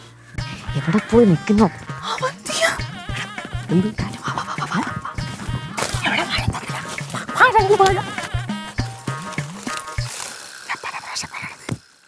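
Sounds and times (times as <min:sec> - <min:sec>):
sustained notes: 0:00.0 - 0:10.4
low bass line: 0:00.3 - 0:10.2.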